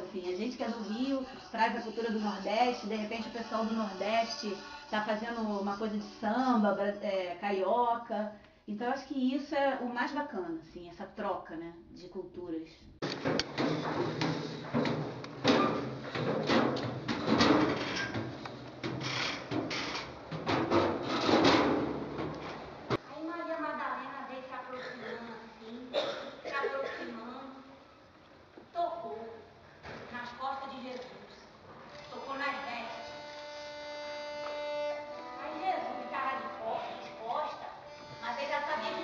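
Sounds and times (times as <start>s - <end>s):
footsteps climbing stairs: 13.0s - 23.0s
steady held note: 32.1s - 39.0s.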